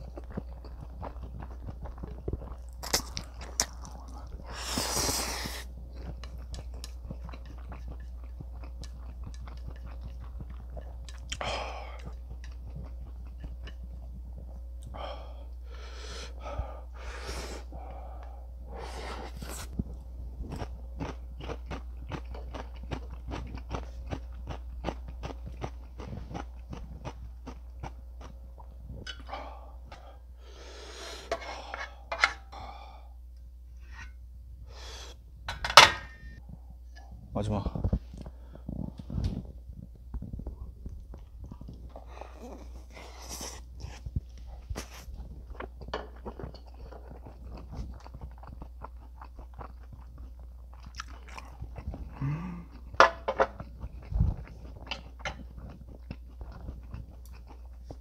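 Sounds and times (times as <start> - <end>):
chewing and mouth sounds: 0.0 - 15.0, 19.4 - 30.1, 37.8 - 58.0.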